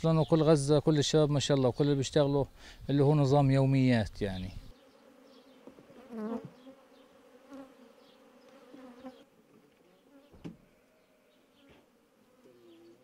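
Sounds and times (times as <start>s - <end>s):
bees buzzing: 4.7s - 9.3s.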